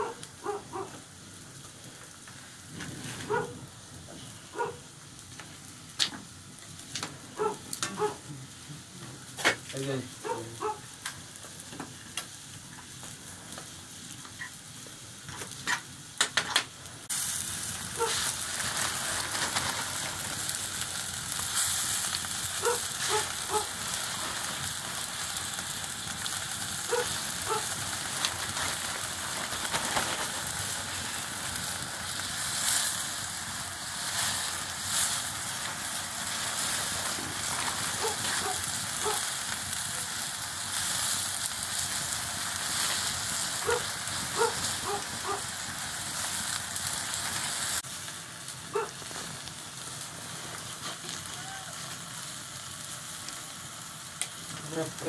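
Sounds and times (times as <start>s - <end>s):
leaves sizzling in a wok: 0.0s - 55.0s
wood fire crackling: 0.0s - 55.0s.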